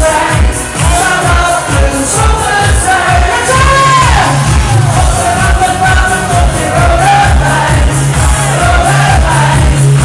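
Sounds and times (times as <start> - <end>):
pop party music with singer: 0.0 - 10.0.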